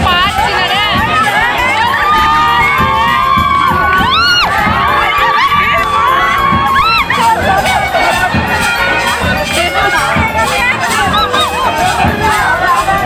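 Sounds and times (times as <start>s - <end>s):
loud crowd: 0.0s - 13.0s
women ululating: 0.0s - 13.0s.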